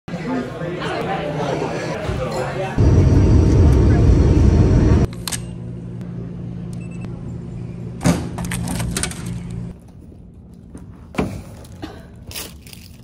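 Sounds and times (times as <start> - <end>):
jet engine rumble: 2.8 - 5.1
cabin drone: 2.8 - 8.4.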